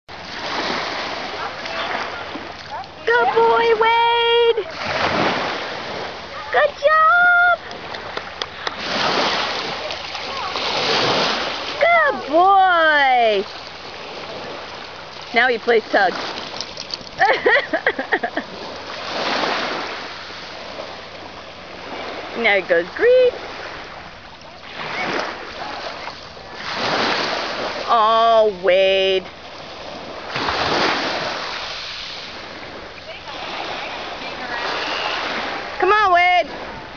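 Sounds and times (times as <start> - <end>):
water splashing: 0.1 - 36.9.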